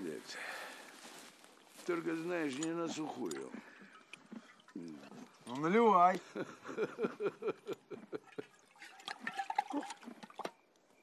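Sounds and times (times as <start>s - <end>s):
liquor glugging from bottle: 7.7s - 10.6s.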